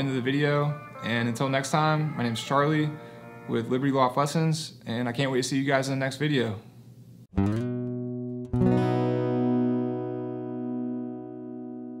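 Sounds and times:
guitar chord ringing: 0.0 - 4.1, 7.4 - 12.0.

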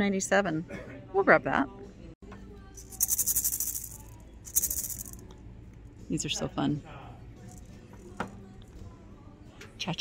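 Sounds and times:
maraca rattling: 2.8 - 5.3.

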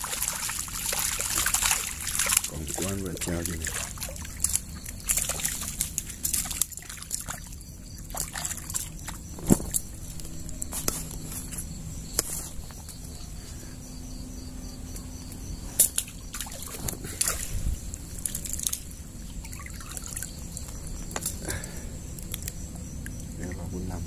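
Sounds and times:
water trickling and sloshing: 0.0 - 24.0.

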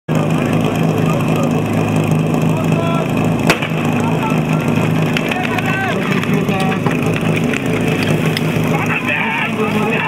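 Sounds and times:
pump engine running: 0.1 - 10.0
voices: 0.1 - 10.0.

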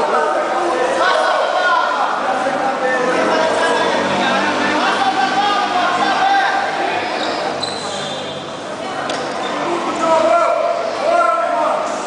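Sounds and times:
raised voices calling out: 0.0 - 7.6.

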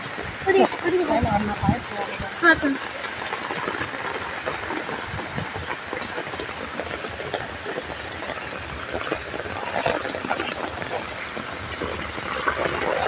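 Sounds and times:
heavy rain falling: 0.0 - 13.0.

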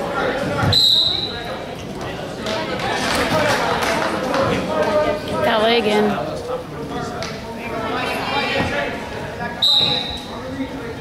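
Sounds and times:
voices in gym hall: 0.0 - 11.0
high-pitched whistle tone: 0.7 - 1.4, 9.6 - 10.3.

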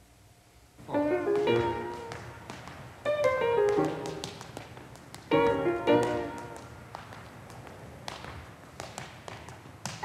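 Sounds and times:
tap shoes on wooden floor: 0.8 - 10.0.

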